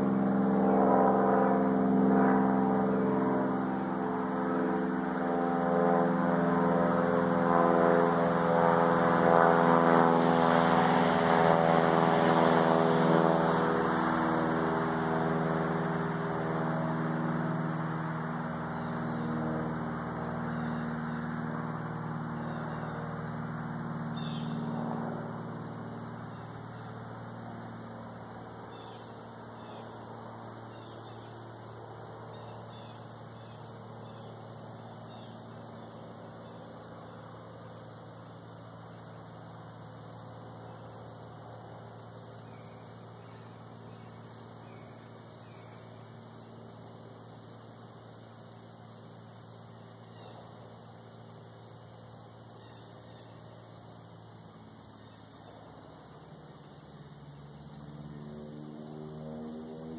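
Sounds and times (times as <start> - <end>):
insect slow repeating chirp: 0.0 - 8.6, 13.0 - 59.9
insect high continuous trill: 0.0 - 59.9.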